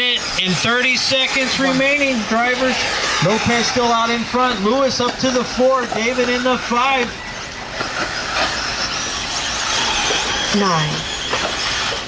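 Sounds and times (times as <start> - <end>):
electric motors whining: 0.0 - 12.0
tyre and track noise: 0.0 - 12.0.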